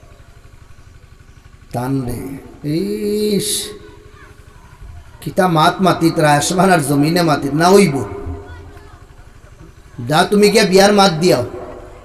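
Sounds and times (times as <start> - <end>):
man speaking over loudspeakers: 1.7 - 4.4, 5.1 - 9.0, 9.9 - 12.0
faint low rumble: 3.6 - 12.0.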